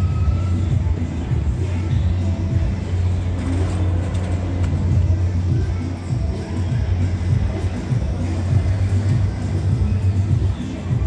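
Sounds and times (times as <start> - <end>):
amusement ride machinery rumble: 0.0 - 11.0
music playing: 0.0 - 11.0.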